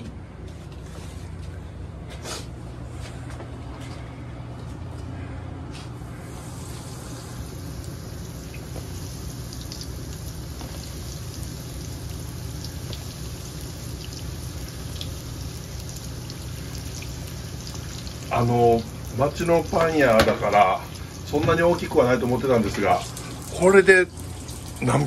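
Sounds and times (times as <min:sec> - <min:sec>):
oil sizzling and crackling: 0:06.2 - 0:25.0.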